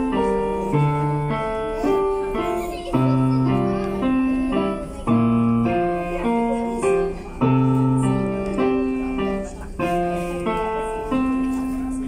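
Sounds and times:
digital piano melody: 0.0 - 12.0.

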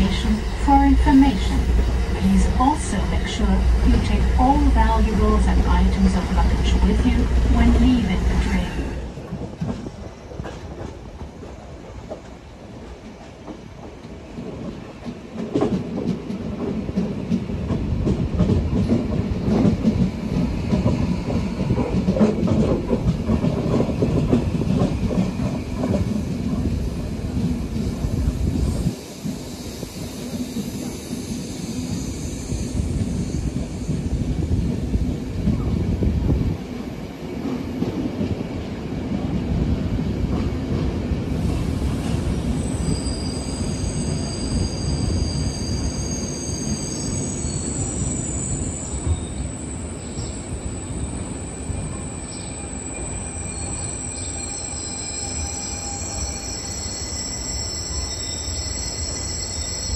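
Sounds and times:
train wheels rumbling on rails: 0.0 - 59.9
train brakes squealing: 28.7 - 34.2, 41.5 - 59.9.

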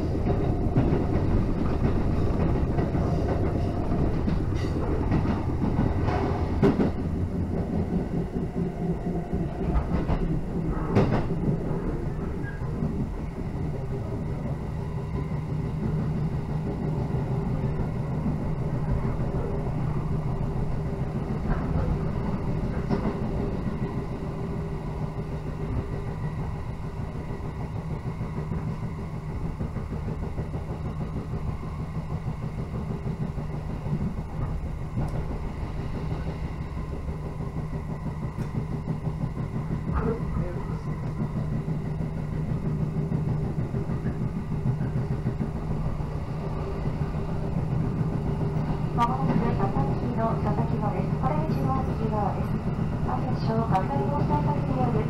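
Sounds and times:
train rumbling at speed: 0.0 - 55.0.

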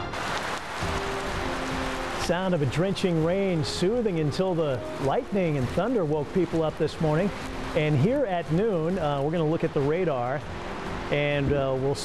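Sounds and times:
music bed of sustained tones: 0.0 - 11.5
heavy rain falling: 0.0 - 12.0.

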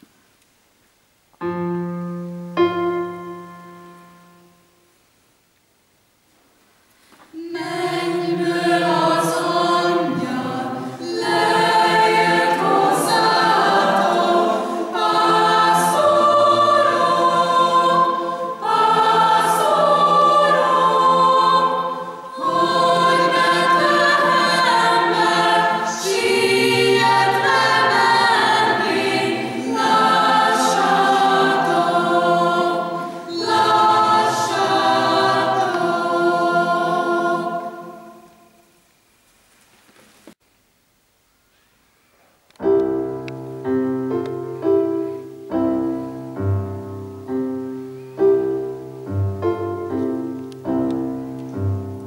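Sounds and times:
mixed choir singing: 7.3 - 38.6.

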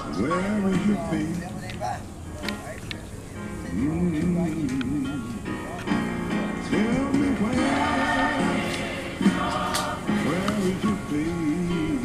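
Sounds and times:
instrumental backing: 0.0 - 12.0
gospel choir singing: 6.6 - 12.0.

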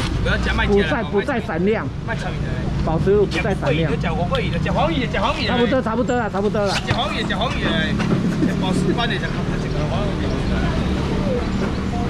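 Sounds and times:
voices and laughter: 3.3 - 11.6.

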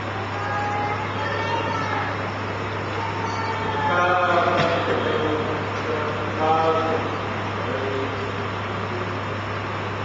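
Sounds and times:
faint indistinct voices: 0.0 - 9.4.

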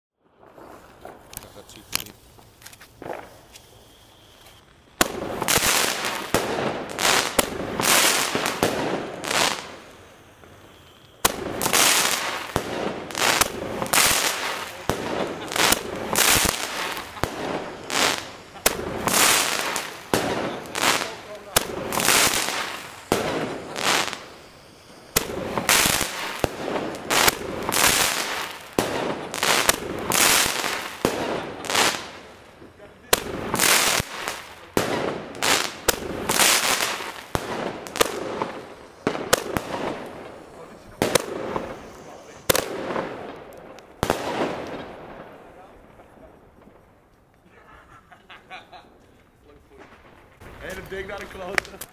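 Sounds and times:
fireworks bangs and crackles: 0.2 - 51.9.

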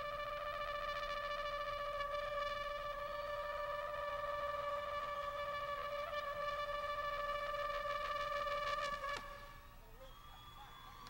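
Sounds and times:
trumpet long high note: 0.0 - 9.7.

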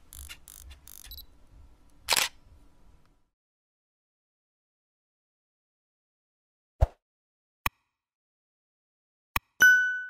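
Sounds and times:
camera shutter click: 2.1 - 2.4.

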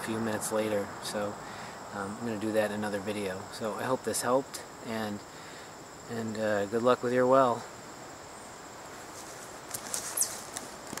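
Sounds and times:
crickets droning: 0.0 - 11.0
light ticks and rustles: 9.0 - 11.0
high falling chirp: 9.9 - 10.5.

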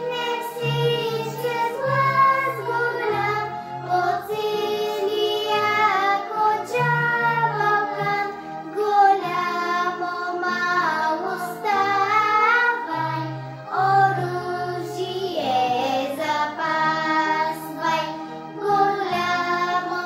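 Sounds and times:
girl singing: 0.0 - 20.0
instrumental backing with bass: 0.0 - 20.0.

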